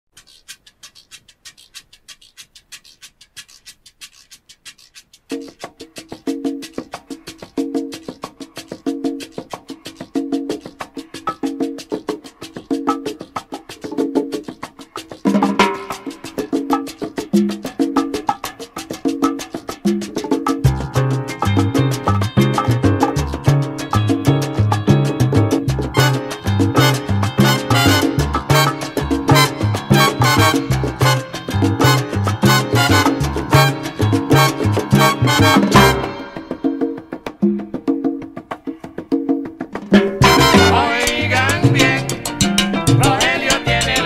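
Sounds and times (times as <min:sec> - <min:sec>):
percussion clicks: 0:00.1 - 0:37.7
salsa music: 0:04.9 - 0:44.0
sharp percussion strikes: 0:15.3 - 0:17.6, 0:20.7 - 0:37.8, 0:39.8 - 0:44.0
repeating pitched figure: 0:25.3 - 0:36.6, 0:40.2 - 0:42.2.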